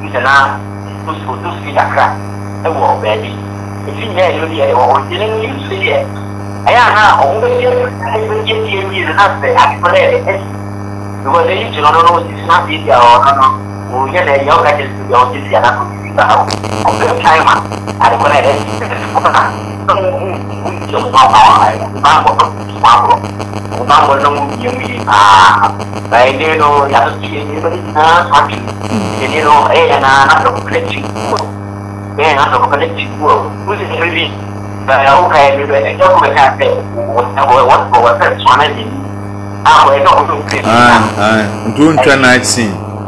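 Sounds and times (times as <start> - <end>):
electrical hum: 0.0 - 43.0
person speaking: 11.3 - 31.6, 39.8 - 42.8
man speaking: 28.9 - 29.5, 40.5 - 42.8.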